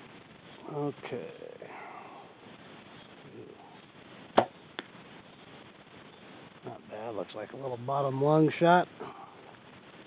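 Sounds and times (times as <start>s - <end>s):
arrow striking target: 4.4s - 4.6s.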